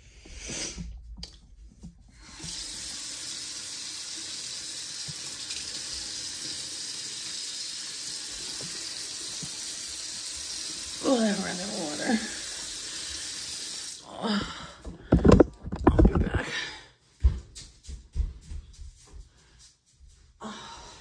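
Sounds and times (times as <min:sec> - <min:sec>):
water running into basin: 0:02.1 - 0:14.5.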